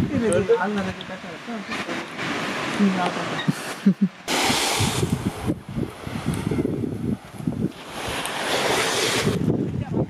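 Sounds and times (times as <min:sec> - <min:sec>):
wind buffeting microphone: 0:00.0 - 0:01.2, 0:04.3 - 0:10.0
small waves on sandy shore: 0:00.0 - 0:10.0.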